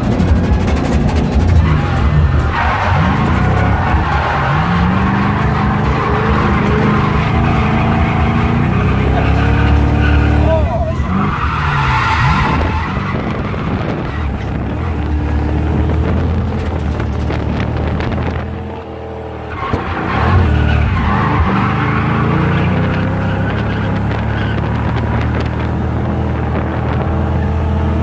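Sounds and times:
car engine revving: 0.0s - 28.0s.

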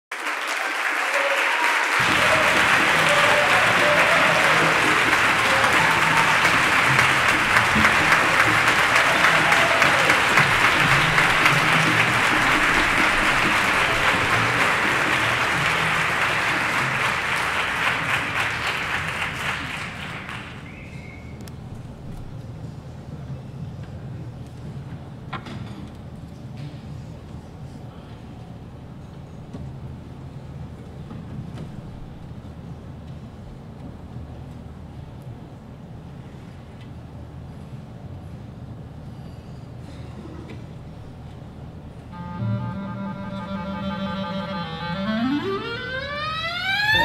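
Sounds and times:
audience applauding: 0.1s - 21.3s, 44.9s - 47.0s.

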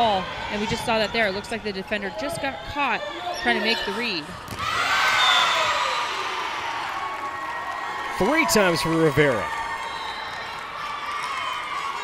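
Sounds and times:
crowd cheering and shrieking: 3.1s - 12.0s.

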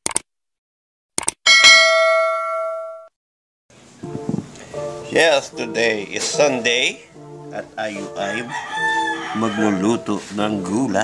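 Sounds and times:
notification bell ding: 1.5s - 3.1s.

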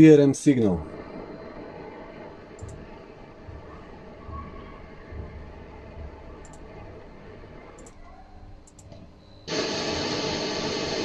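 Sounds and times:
steady digital noise hiss: 0.0s - 7.6s, 9.5s - 11.0s
faint clicks: 6.4s - 6.7s, 7.8s - 8.0s, 8.6s - 9.0s.

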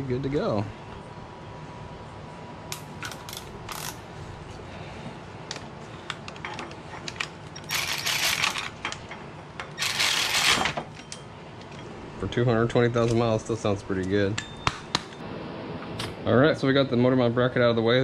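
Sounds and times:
cordless ratchet running: 7.6s - 8.7s, 9.7s - 10.7s.

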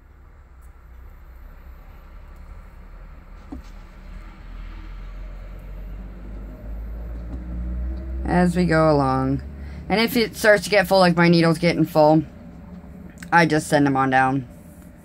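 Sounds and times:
low rumble: 0.0s - 15.0s.

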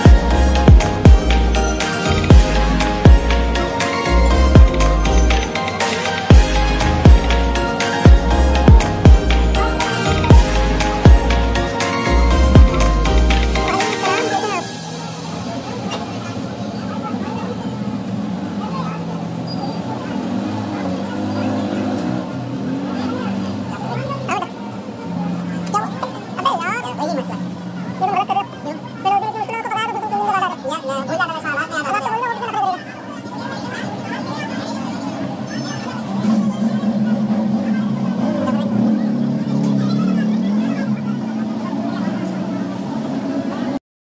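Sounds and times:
indistinct voices: 0.0s - 43.8s.

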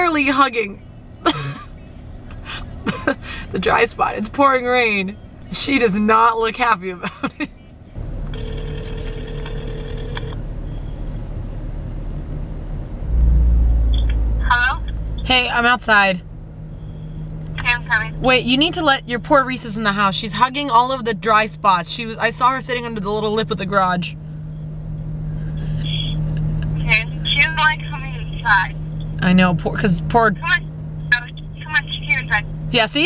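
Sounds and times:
car engine idling: 0.0s - 33.0s
phone ringback tone: 8.4s - 10.4s.

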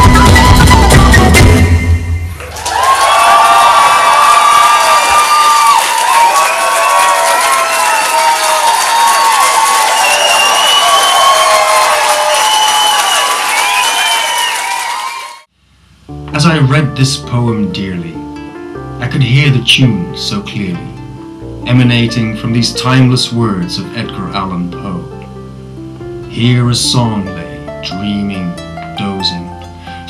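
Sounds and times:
concert audience cheering: 0.0s - 15.5s.

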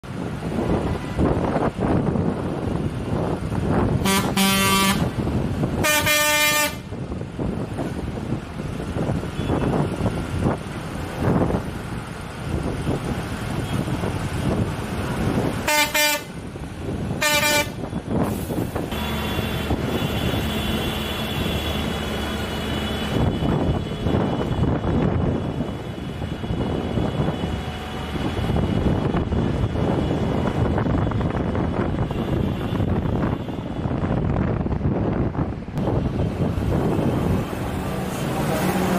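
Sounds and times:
diesel engines running: 0.0s - 38.9s
road noise: 0.0s - 38.9s
steady engine tones: 0.0s - 38.9s
tractor horn blasts: 4.0s - 5.1s, 5.8s - 6.9s, 15.7s - 16.3s, 17.2s - 17.9s, 18.9s - 22.0s.

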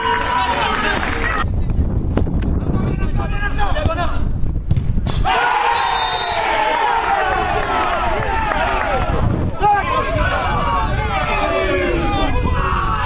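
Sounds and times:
people shouting and calling: 5.2s - 13.0s.

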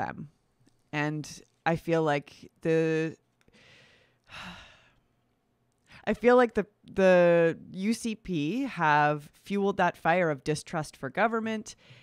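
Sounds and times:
woman breathing: 3.5s - 5.1s, 11.8s - 12.0s
woman sighing: 3.7s - 5.0s.

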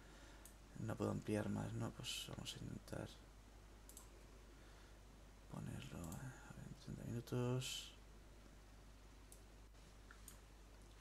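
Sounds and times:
low room hum: 0.0s - 11.0s
computer mouse click: 3.9s - 4.1s, 10.1s - 10.4s.

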